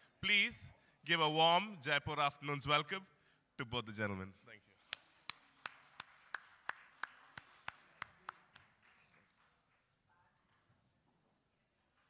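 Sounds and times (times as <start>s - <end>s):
faint applause in a hall: 4.8s - 10.2s.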